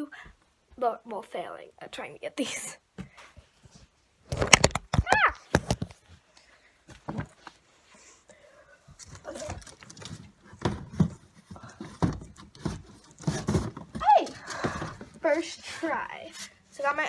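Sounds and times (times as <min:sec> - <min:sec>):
knocks and thumps in closet: 0:09.0 - 0:15.5.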